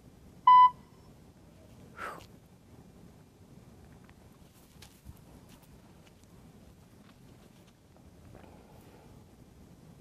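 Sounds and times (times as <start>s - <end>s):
short electronic beep: 0.5s - 1.1s.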